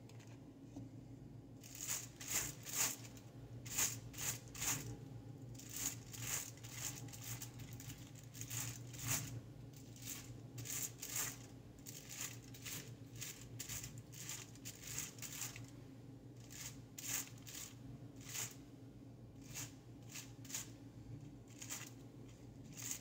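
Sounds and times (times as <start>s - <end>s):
low steady hum: 0.0s - 23.0s
foil crinkling: 5.6s - 15.7s.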